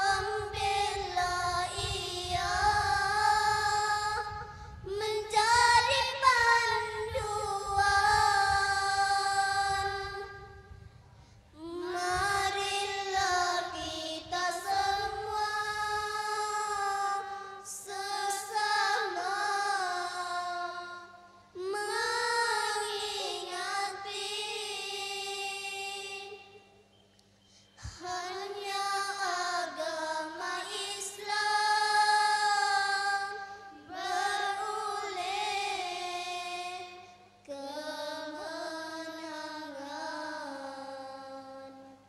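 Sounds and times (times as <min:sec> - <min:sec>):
girls singing in unison: 0:00.0 - 0:10.7, 0:11.6 - 0:26.6, 0:27.8 - 0:42.0.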